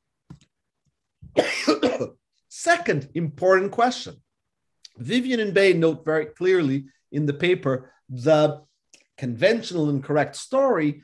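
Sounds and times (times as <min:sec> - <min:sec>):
man coughing: 0:01.3 - 0:02.2.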